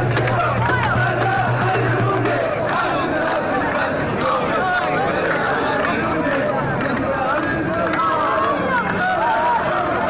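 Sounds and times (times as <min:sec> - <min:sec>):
hand clapping: 0:00.0 - 0:09.1
crowd chanting and shouting: 0:00.0 - 0:10.0.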